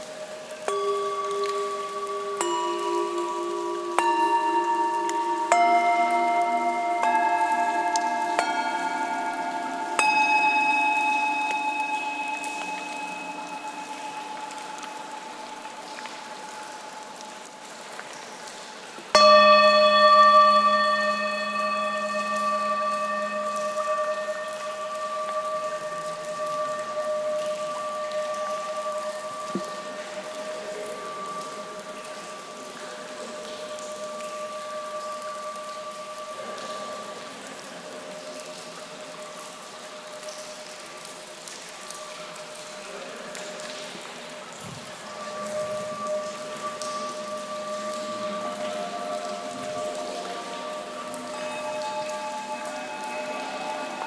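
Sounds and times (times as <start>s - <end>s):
water dripping in cave: 0.0s - 54.0s
singing bowl ringing: 0.4s - 16.8s, 19.2s - 39.6s, 40.2s - 54.0s.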